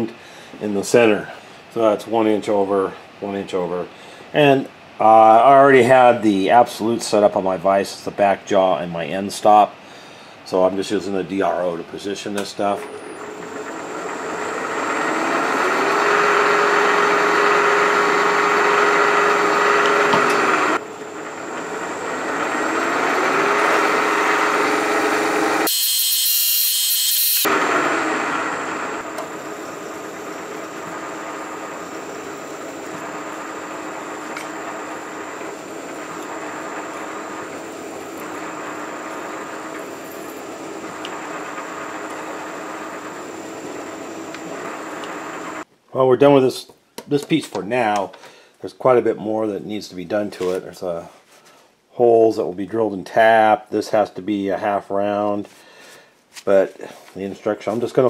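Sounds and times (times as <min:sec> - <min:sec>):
milling machine spindle drilling metal: 0:12.8 - 0:45.6.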